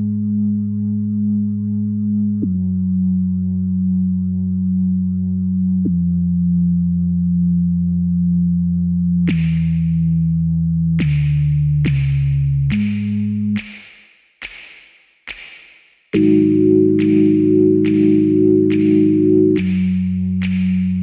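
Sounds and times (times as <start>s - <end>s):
low synthesizer drone: 0.0s - 13.6s, 16.2s - 21.0s.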